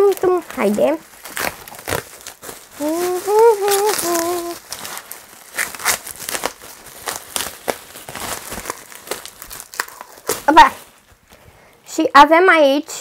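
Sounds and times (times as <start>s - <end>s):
wrapping crinkling and rustling: 0.0s - 12.0s
woman vocal sound: 2.8s - 4.6s.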